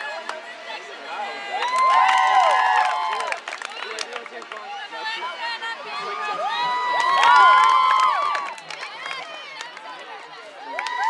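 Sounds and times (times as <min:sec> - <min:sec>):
crowd cheering and whooping: 0:01.1 - 0:03.4, 0:06.0 - 0:08.6, 0:10.6 - 0:11.0.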